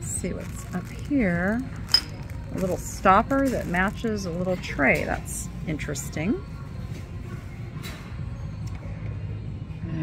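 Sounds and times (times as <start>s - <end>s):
shop background rumble: 0.0s - 10.0s.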